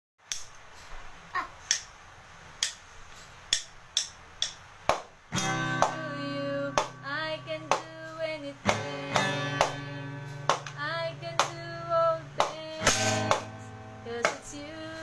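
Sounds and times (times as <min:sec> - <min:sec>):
drumsticks hitting toy drum: 0:03.5 - 0:05.0
song with singing: 0:05.6 - 0:15.0.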